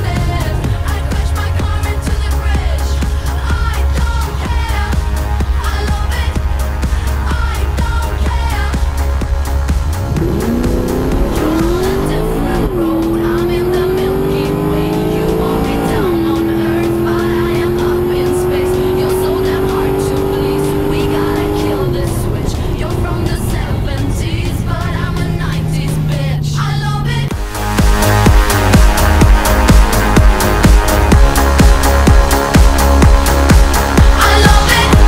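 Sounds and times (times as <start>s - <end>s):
car engine at full throttle: 0.0s - 35.0s
loud music: 0.0s - 35.0s.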